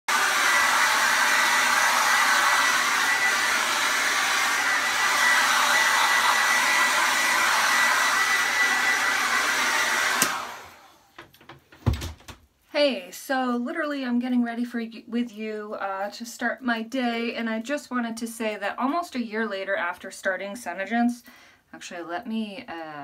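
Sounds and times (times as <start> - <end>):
hair dryer blowing: 0.1 - 11.3
hair dryer switch click: 10.1 - 10.5.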